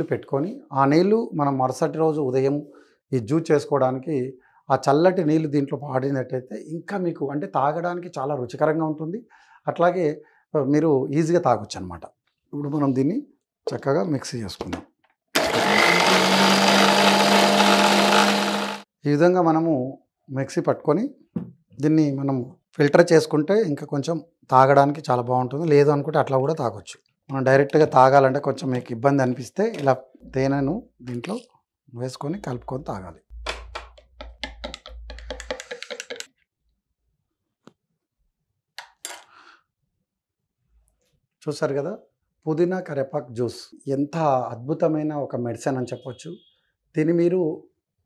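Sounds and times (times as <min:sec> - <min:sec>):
mixer grinder motor whining: 0:15.4 - 0:18.9
metal spoon clattering: 0:34.4 - 0:36.3.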